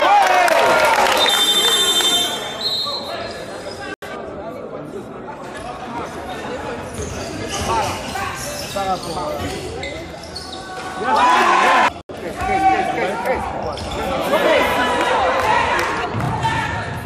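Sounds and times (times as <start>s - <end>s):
players' voices: 1.6s - 17.0s
shoe squeaks: 6.9s - 11.0s, 13.6s - 14.1s.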